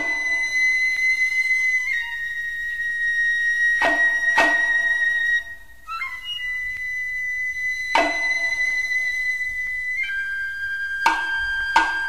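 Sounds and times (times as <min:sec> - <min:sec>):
flute long high note: 0:00.0 - 0:12.0
percussion hit: 0:03.8 - 0:05.1, 0:07.9 - 0:09.0.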